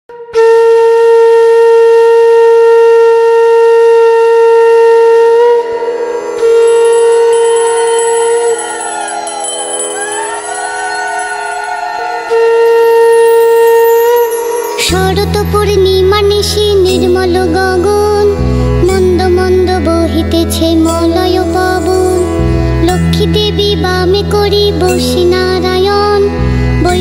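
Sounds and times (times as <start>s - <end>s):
conch shell blown: 0.1s - 15.6s.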